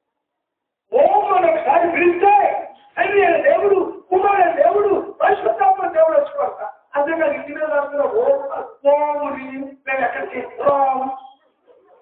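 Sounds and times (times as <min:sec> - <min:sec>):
man preaching in half-chanted voice: 0:00.9 - 0:11.4.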